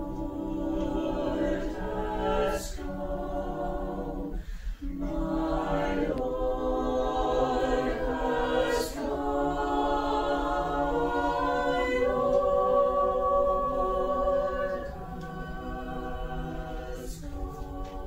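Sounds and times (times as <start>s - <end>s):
mixed choir singing a cappella: 0.0s - 18.0s.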